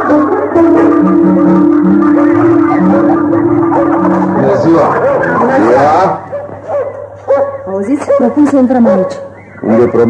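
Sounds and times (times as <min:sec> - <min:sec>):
folk music with plucked strings: 0:00.0 - 0:05.8
dog barking and yelping: 0:02.1 - 0:09.4.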